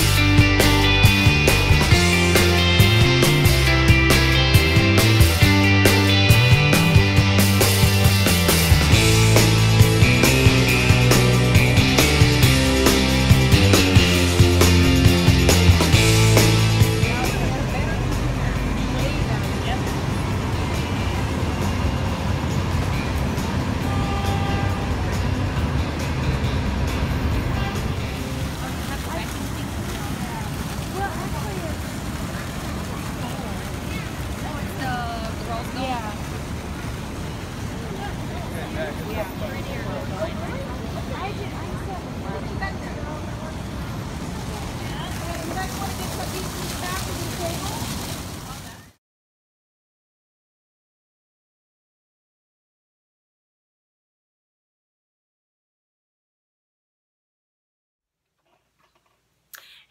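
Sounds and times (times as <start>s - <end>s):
chatter of passers-by: 0.0s - 49.0s
city street traffic: 0.0s - 49.0s
people's voices: 4.7s - 22.5s, 27.6s - 49.0s.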